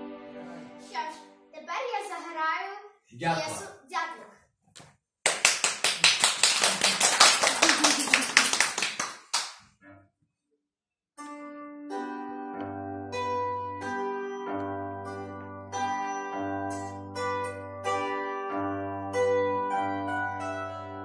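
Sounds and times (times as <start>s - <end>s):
hands clapping in applause: 5.2s - 9.6s.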